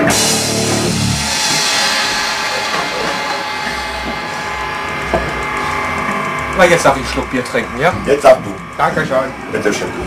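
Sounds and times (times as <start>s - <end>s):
cymbal wash: 0.0s - 10.0s
sustained electric guitar tones: 0.0s - 10.0s.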